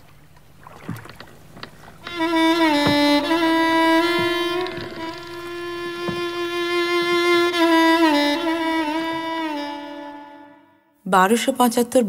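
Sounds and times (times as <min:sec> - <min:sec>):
wooden boat creaks and knocks: 0:00.0 - 0:09.3
soft water noise: 0:00.0 - 0:10.2.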